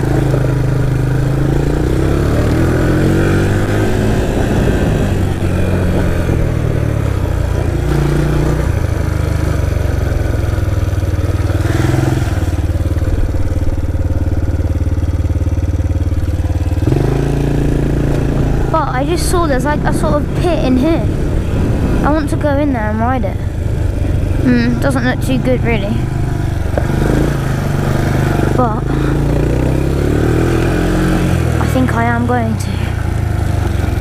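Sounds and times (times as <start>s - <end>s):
quad engine revving: 0.0s - 34.0s.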